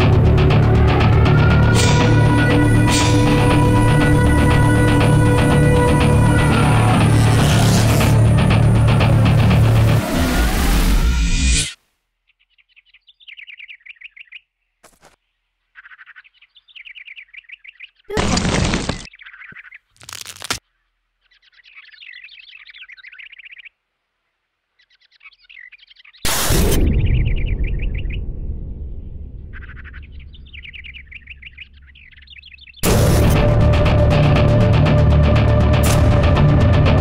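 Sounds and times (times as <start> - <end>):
loud music: 0.0 - 10.0, 32.8 - 37.0
small bird chirping trill: 12.2 - 18.1, 19.1 - 23.8, 24.7 - 26.3, 29.5 - 32.8
deep rumble: 26.6 - 37.0.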